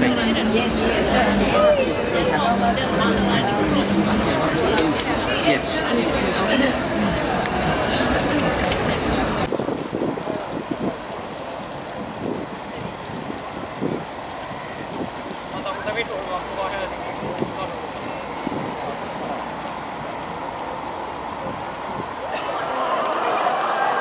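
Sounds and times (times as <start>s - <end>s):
indoor chatter: 0.0s - 24.0s
traffic: 0.0s - 24.0s
wind: 0.0s - 24.0s.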